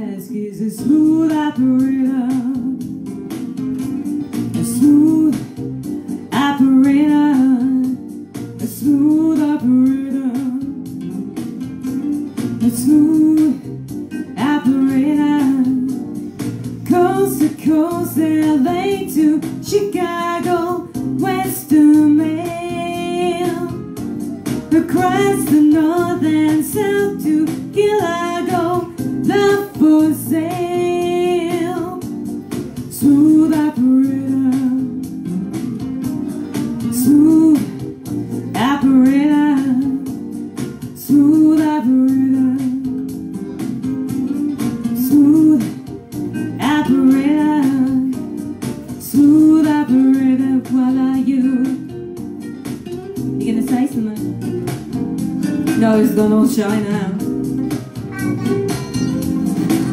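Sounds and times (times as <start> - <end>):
woman singing with vibrato: 0.0 - 2.8, 4.6 - 5.6, 6.3 - 8.0, 8.6 - 10.8, 12.6 - 13.7, 14.3 - 16.1, 16.8 - 23.8, 24.7 - 32.0, 32.9 - 35.7, 36.9 - 37.8, 38.5 - 40.1, 41.0 - 42.9, 45.0 - 45.8, 46.5 - 48.2, 49.0 - 51.8, 55.8 - 57.2
guitar accompaniment: 0.0 - 59.9.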